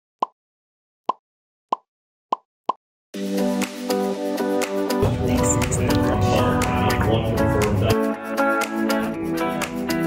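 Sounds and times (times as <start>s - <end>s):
music with steady beat: 3.2s - 10.0s.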